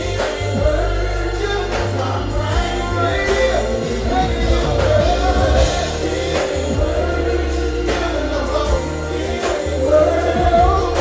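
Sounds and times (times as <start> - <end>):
live band playing slow song: 0.0 - 11.0
person singing: 0.0 - 11.0.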